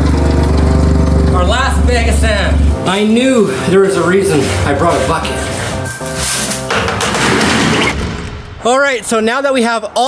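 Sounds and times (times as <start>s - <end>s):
background music: 0.1s - 10.0s.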